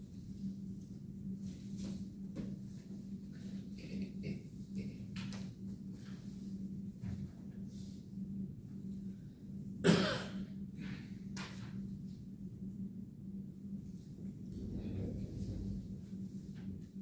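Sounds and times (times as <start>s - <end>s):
steady low hum: 0.0s - 17.0s
person coughing: 9.8s - 10.5s.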